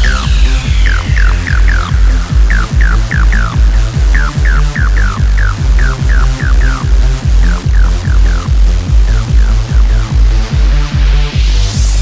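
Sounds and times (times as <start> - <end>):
falling synth notes: 0.0 - 10.6
kick drum: 1.9 - 12.0.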